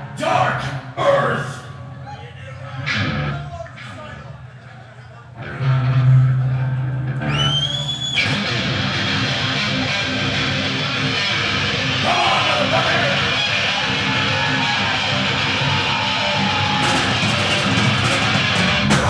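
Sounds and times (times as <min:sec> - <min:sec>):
heavy metal band playing live: 0:08.2 - 0:19.0.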